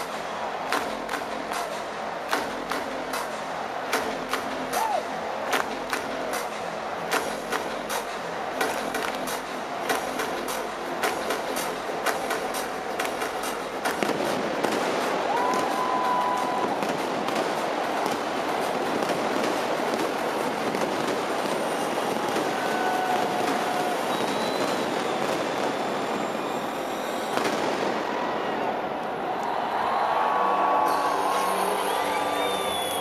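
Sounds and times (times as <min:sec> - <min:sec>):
people clapping: 0:00.0 - 0:25.8
arena crowd cheering: 0:00.0 - 0:33.0
held whistles: 0:24.1 - 0:27.4, 0:30.9 - 0:33.0.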